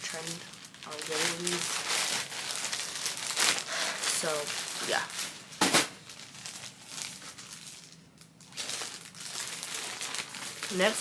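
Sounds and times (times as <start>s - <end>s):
clothes crinkling and rustling: 0.0s - 11.0s.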